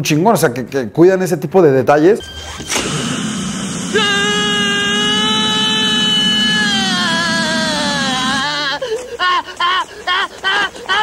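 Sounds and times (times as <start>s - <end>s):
blowtorch rushing: 2.6s - 8.5s
man screaming: 3.1s - 8.8s.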